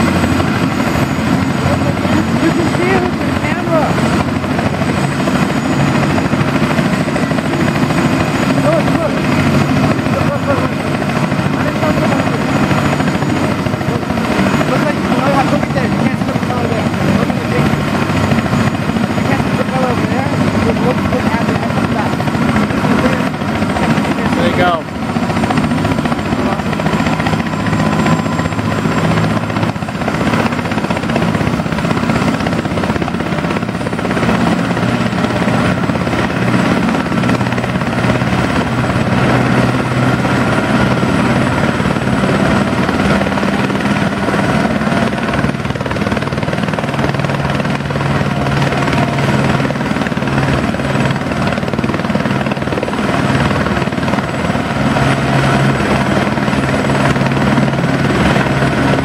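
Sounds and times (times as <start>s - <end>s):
helicopter turbine and rotors: 0.0s - 59.0s.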